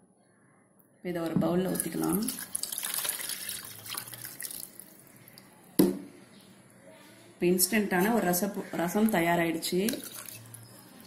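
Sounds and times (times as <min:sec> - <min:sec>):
liquid pouring into a bowl: 0:01.7 - 0:05.5, 0:09.1 - 0:11.0.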